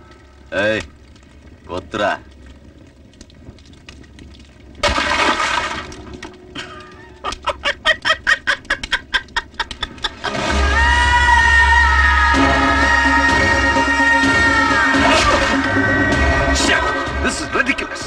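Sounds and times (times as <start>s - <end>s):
man laughing maniacally: 6.6s - 11.0s
music: 10.2s - 18.0s.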